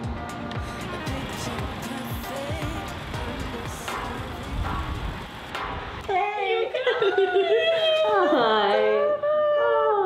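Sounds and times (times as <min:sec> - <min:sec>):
women squealing: 0:06.6 - 0:10.0.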